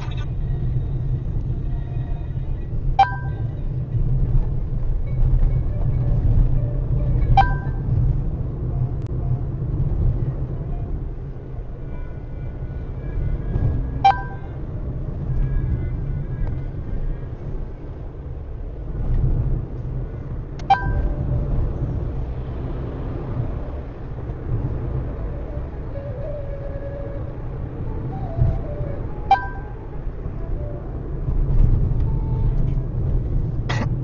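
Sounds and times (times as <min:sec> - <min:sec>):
car engine and tyres rumbling: 0:00.0 - 0:34.0.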